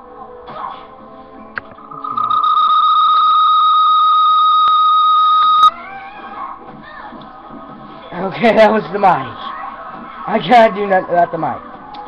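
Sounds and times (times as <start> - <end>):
microphone feedback squeal: 1.9 - 5.7.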